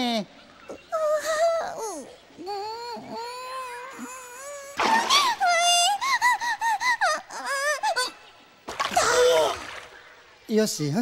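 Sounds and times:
child crying: 0.9s - 8.2s, 8.9s - 9.7s
water splashing: 4.8s - 5.8s, 8.6s - 10.3s.

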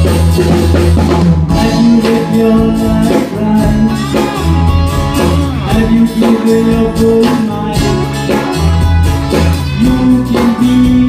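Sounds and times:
live band playing loud music: 0.0s - 11.0s.

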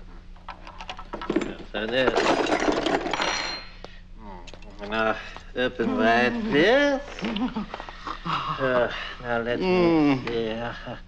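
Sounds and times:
metal instruments clattering: 0.5s - 3.8s.

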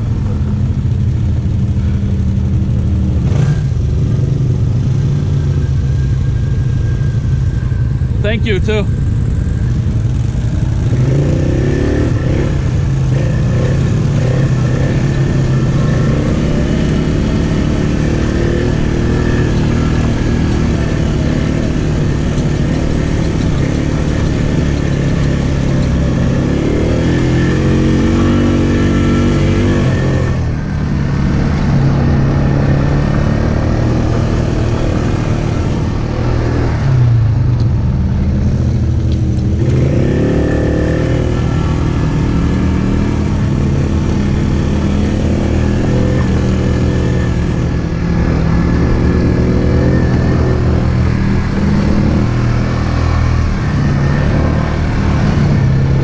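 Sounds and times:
atv engine running: 0.0s - 56.0s.

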